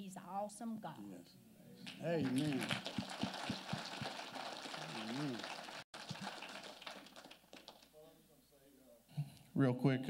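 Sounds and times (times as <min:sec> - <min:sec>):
crowd applauding: 0:01.8 - 0:08.0.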